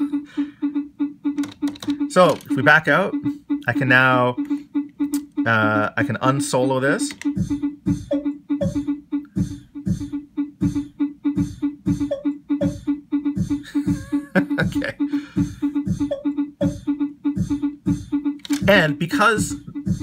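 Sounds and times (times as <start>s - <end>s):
pitched electronic pulse: 0.0s - 20.0s
low kick drum: 7.3s - 20.0s.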